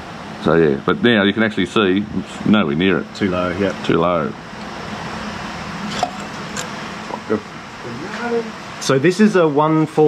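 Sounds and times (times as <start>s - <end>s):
workshop fan humming: 0.0s - 10.0s.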